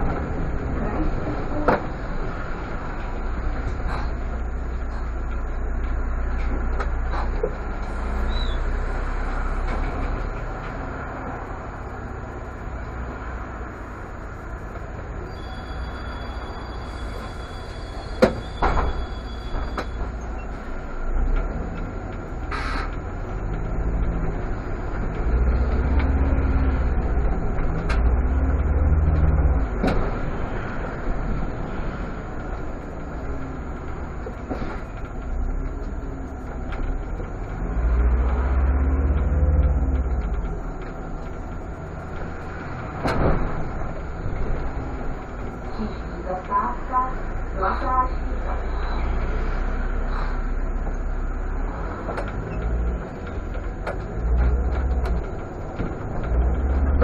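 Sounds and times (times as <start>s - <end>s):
bus engine accelerating: 0.0s - 57.0s.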